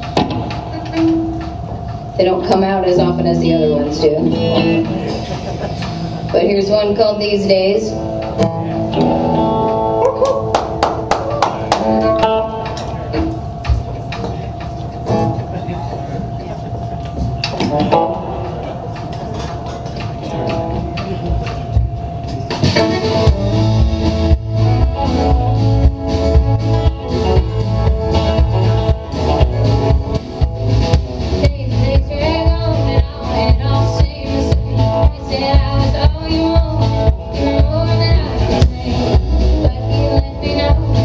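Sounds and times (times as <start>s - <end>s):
drums and bass beat: 0.0s - 7.1s, 17.2s - 41.0s
guitar plucking: 0.0s - 15.6s, 17.3s - 41.0s.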